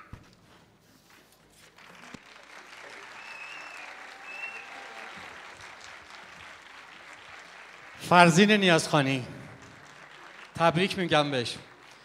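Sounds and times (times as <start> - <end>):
audience applauding: 1.6 - 12.0.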